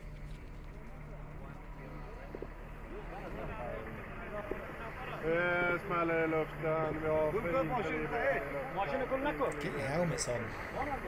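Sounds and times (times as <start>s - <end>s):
men talking: 0.8s - 11.0s.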